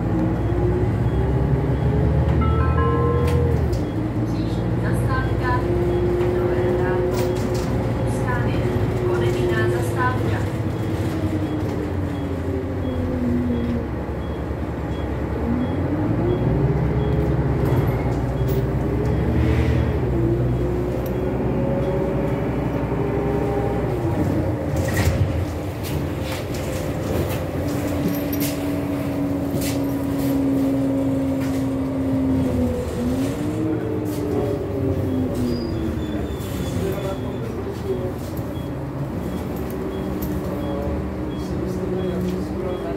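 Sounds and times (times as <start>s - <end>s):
bus engine rumble and whine: 0.0s - 42.9s.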